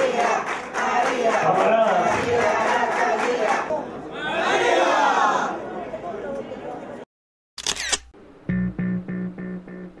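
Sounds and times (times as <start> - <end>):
plucked guitar jingle: 8.5 - 10.0.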